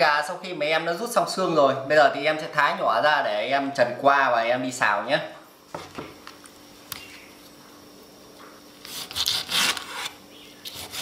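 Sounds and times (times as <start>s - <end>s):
knocks on wooden cutting board: 5.7s - 6.2s.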